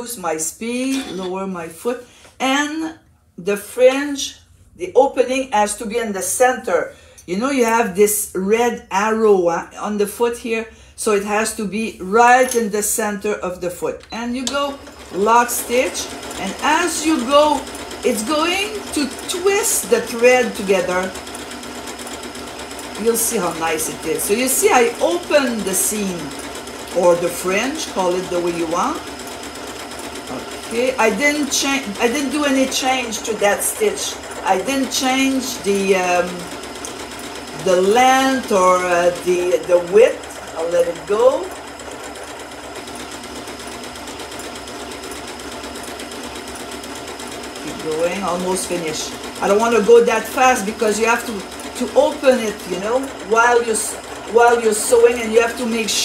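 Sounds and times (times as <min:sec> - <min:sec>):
sewing machine running: 0:00.7 - 0:01.5, 0:13.9 - 0:56.0.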